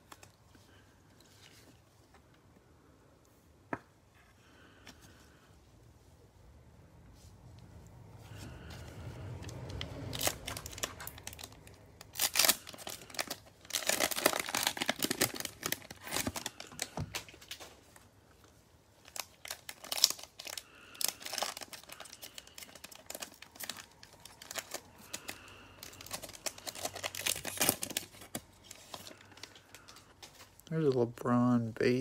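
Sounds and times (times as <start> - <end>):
cellophane wrapper crinkling and tearing: 9.2 - 31.1.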